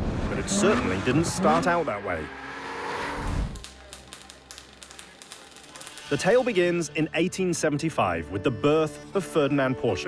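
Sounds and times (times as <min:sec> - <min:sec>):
arc welding crackle: 0:03.2 - 0:06.9.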